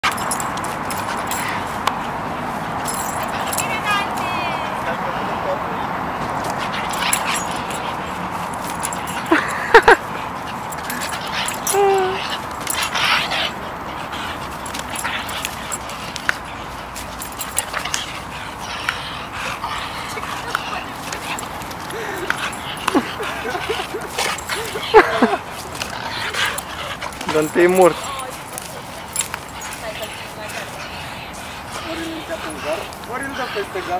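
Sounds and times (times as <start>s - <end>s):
dogs barking and yipping: 0.0s - 33.9s.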